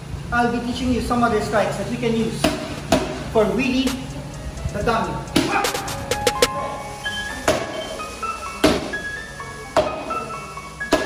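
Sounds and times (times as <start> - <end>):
background music: 2.8 - 8.5.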